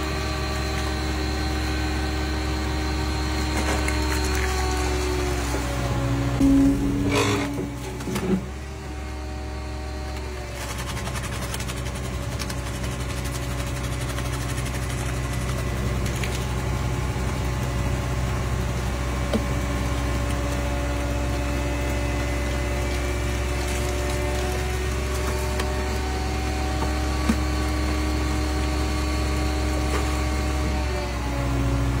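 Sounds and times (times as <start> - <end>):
hydraulic crusher droning: 0.0 - 10.6, 15.6 - 32.0.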